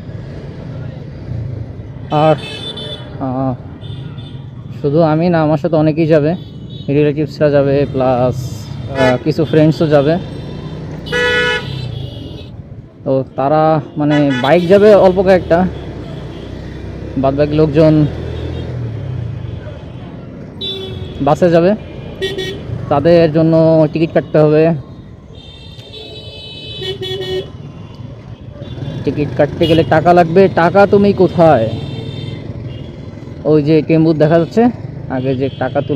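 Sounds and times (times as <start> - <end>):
traffic rumble: 0.0 - 35.9
vehicle horn: 8.9 - 9.6, 11.0 - 12.5, 14.0 - 15.2, 20.6 - 21.3, 22.0 - 22.7, 25.4 - 27.6
vehicle horn toot: 11.0 - 12.5.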